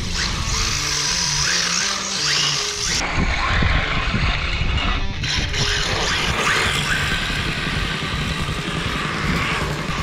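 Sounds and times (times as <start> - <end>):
toy car motor whine: 0.0 - 10.0.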